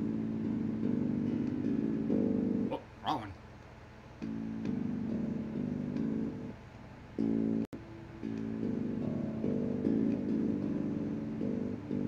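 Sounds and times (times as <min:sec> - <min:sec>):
electric bass guitar notes: 0:00.0 - 0:02.8, 0:04.2 - 0:06.5, 0:07.2 - 0:12.0.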